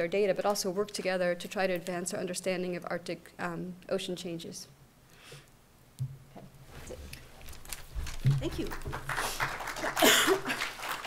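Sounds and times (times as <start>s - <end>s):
audience applauding: 8.4s - 11.0s
short laugh: 10.0s - 10.7s.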